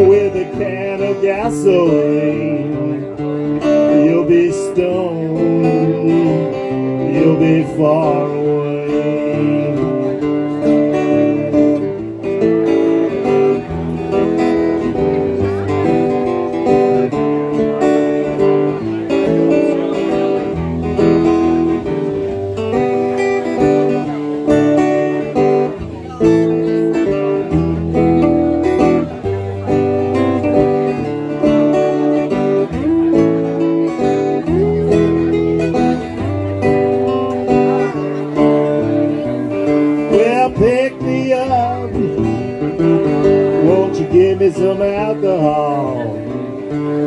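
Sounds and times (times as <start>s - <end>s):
acoustic guitars strumming: 0.0s - 47.0s.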